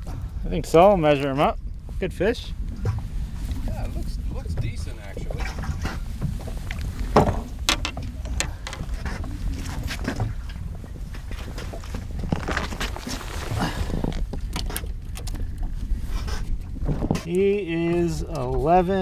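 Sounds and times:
wind rumbling on microphone: 0:00.0 - 0:19.0
knocks and scrapes handling fish: 0:02.7 - 0:18.7.

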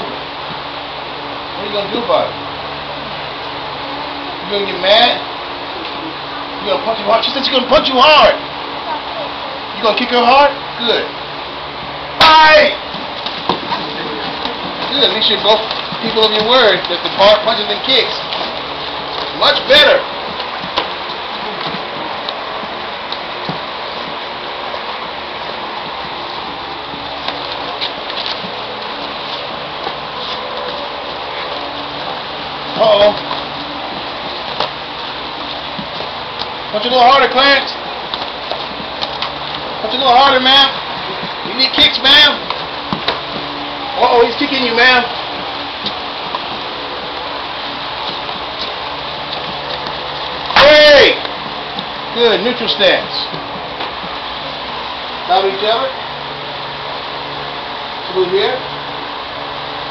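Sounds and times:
gym room noise hiss: 0:00.0 - 0:59.9.

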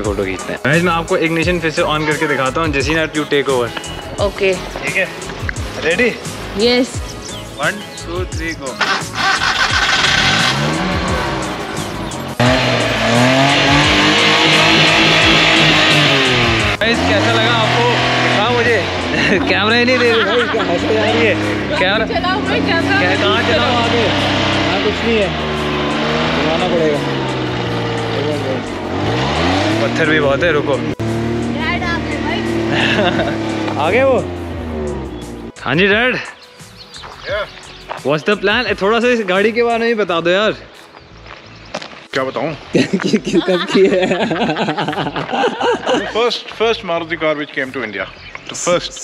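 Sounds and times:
loud music with guitar: 0:00.0 - 0:39.5
small car engine revving: 0:08.8 - 0:35.5.

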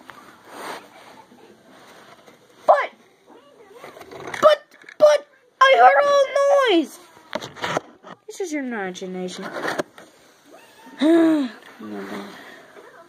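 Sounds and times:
child making vocal noises: 0:10.8 - 0:11.6.

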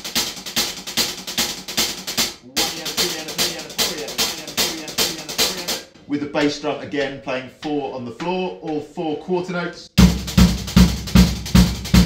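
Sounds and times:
hi-hat playing sixteenth notes: 0:00.0 - 0:06.0
bass drum beats: 0:00.0 - 0:06.6, 0:10.0 - 0:12.0.

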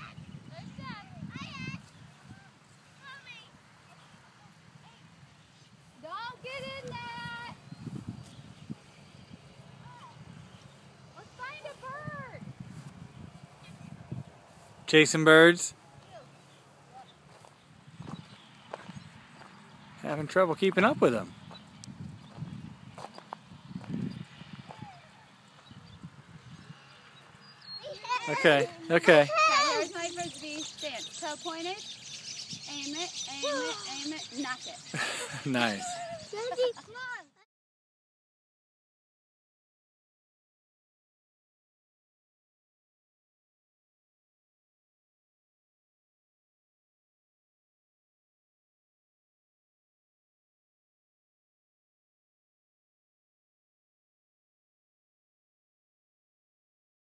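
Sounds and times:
distant children's voices: 0:00.0 - 0:07.7, 0:09.7 - 0:12.9, 0:24.5 - 0:25.7, 0:26.8 - 0:31.9, 0:32.5 - 0:37.4
footsteps on wood chips: 0:17.2 - 0:19.6
children shouting in distance: 0:27.8 - 0:30.6.

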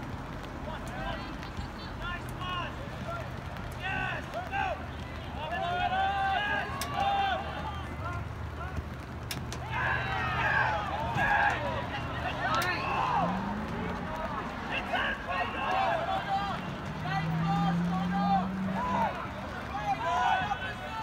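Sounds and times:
spectators and players shouting: 0:02.1 - 0:21.0.

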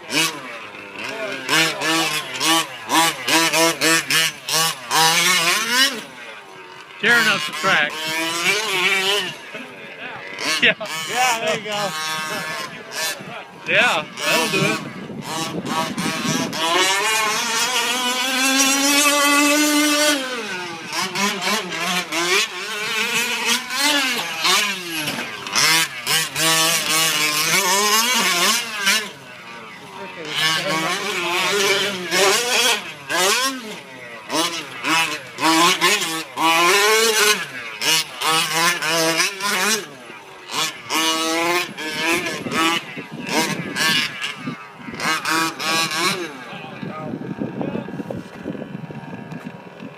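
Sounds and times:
small two-stroke engine revving: 0:00.0 - 0:49.9.

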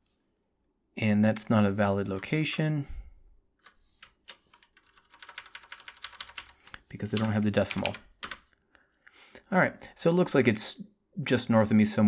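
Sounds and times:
typing on computer keyboard: 0:03.6 - 0:08.5.

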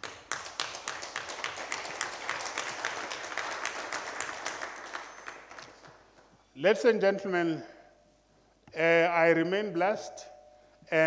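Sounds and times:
audience applauding: 0:00.0 - 0:06.1.

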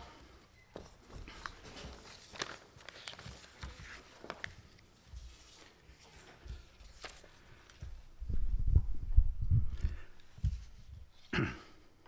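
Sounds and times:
paper rustling: 0:00.1 - 0:08.0.

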